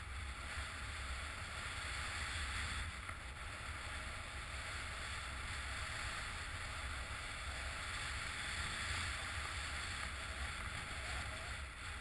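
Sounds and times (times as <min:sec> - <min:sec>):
skis sliding on snow: 0:00.0 - 0:12.0.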